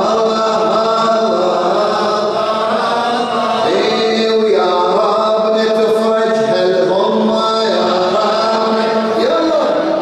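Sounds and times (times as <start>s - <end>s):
man chanting through a microphone: 0.0s - 10.0s.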